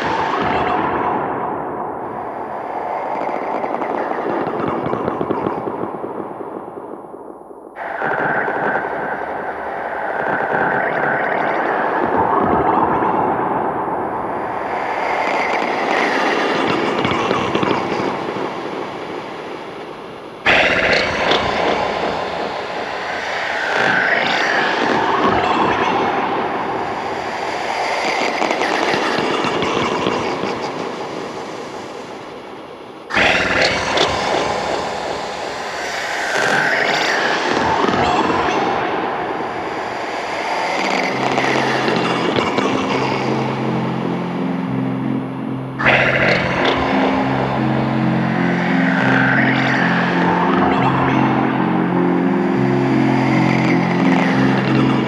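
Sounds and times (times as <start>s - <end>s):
noisy electronic music: 32.9s - 55.0s
low synth line: 37.7s - 55.0s.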